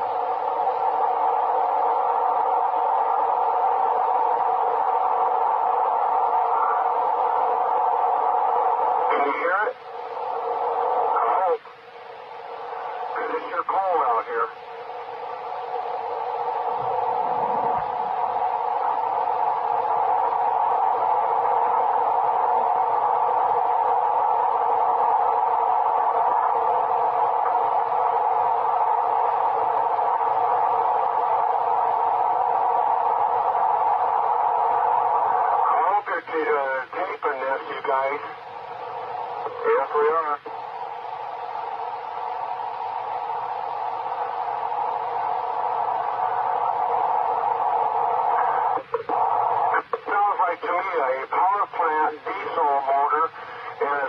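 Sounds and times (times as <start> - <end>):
radio static hiss: 0.0 - 54.0
garbled radio transmission: 0.6 - 54.0.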